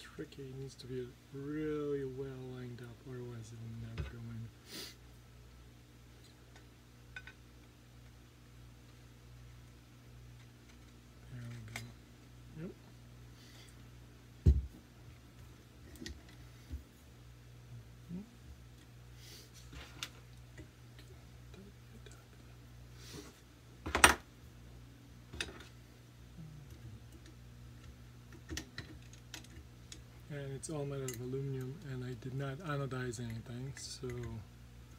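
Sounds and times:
low steady hum: 0:00.0 - 0:34.9.

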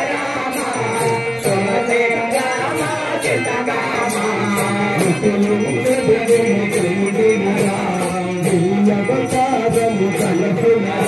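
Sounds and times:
group devotional singing: 0:00.0 - 0:11.0
percussion beat: 0:00.0 - 0:11.0.

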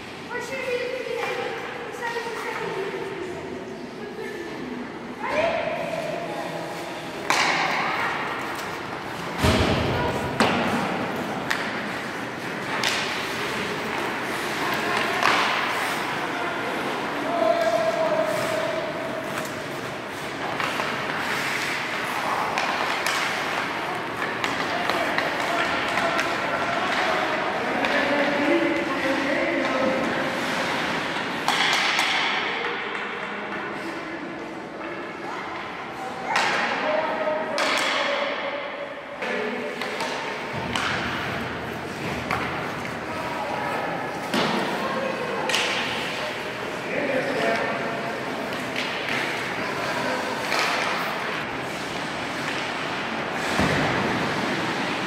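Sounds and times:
hockey sticks and pucks clacking: 0:00.0 - 0:03.1, 0:05.9 - 0:55.0
pucks banging off boards: 0:06.7 - 0:33.8, 0:36.3 - 0:36.8, 0:37.4 - 0:38.4, 0:39.2 - 0:55.0.

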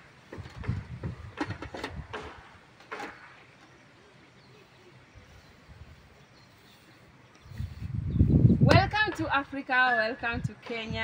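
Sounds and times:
faint outdoor background: 0:00.0 - 0:11.0.

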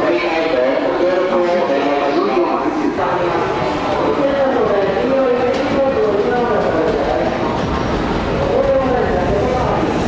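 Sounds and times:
train equipment running: 0:01.8 - 0:10.0.

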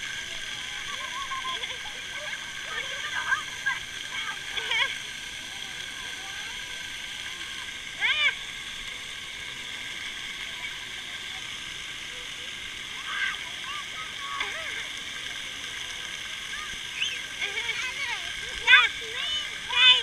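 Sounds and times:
water jets spraying: 0:00.0 - 0:20.0.

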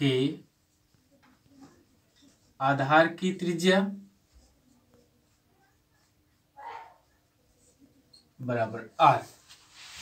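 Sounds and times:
marker pen on whiteboard: 0:00.3 - 0:10.0.

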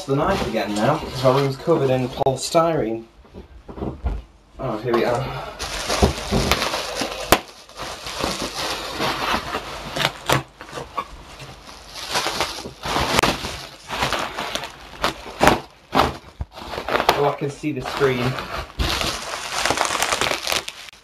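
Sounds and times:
bubble wrap crinkling and cracking: 0:05.3 - 0:21.0.

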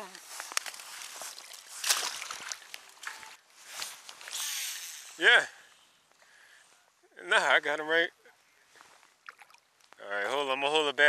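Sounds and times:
shallow water sloshing and splashing: 0:00.6 - 0:04.4, 0:09.1 - 0:09.8.

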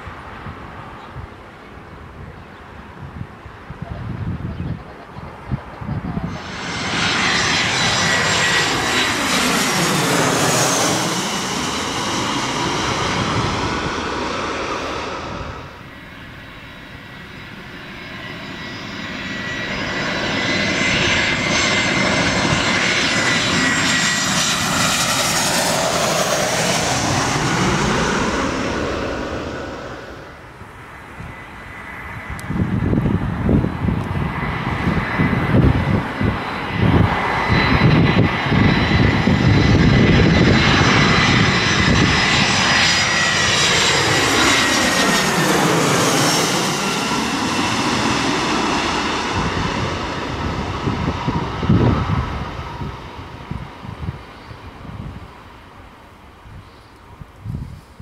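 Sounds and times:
jet airliner turbofan roar: 0:00.0 - 0:58.0
rough fluttering rumble overhead: 0:00.0 - 0:58.0
steady jet engine whine: 0:00.0 - 0:58.0.

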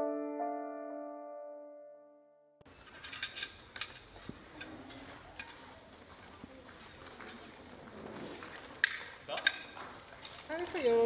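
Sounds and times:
cutlery clinking on plates: 0:08.8 - 0:09.8.

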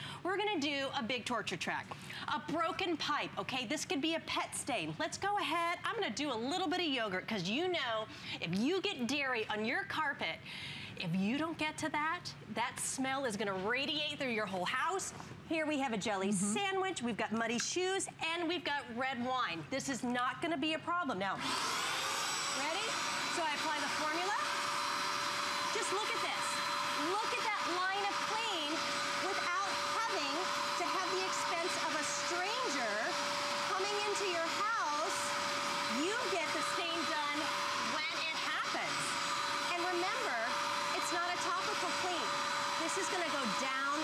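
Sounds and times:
carpet cleaner suction with whine: 0:21.4 - 0:44.0.

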